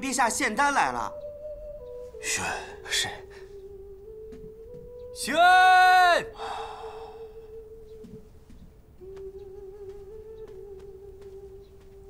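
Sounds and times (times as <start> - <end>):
man calling out: 2.2 - 3.4, 5.2 - 6.4.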